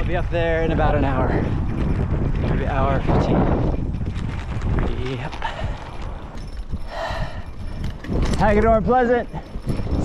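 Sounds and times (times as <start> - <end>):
bike rattling over dirt: 0.0 - 10.0
wind rumble on microphone: 0.0 - 10.0.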